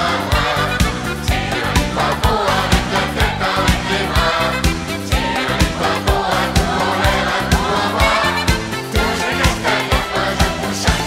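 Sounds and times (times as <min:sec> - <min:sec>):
group of voices singing: 0:00.0 - 0:11.0
upbeat pop music: 0:00.0 - 0:11.0.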